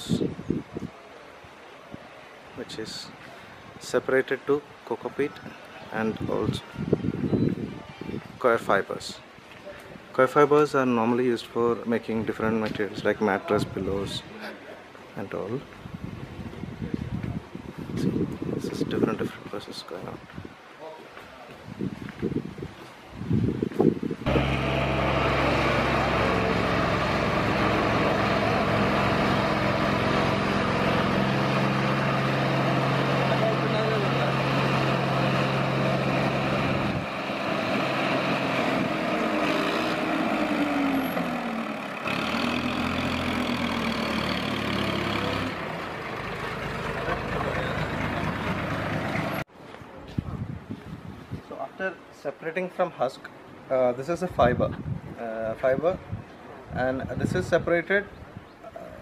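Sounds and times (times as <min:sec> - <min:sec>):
electric motor hum: 0:24.3 - 0:45.6.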